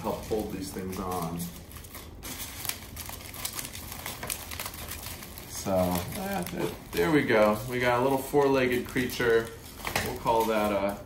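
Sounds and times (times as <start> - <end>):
aluminum foil crinkling: 0.0 - 11.0
duct tape being wrapped: 0.0 - 11.0.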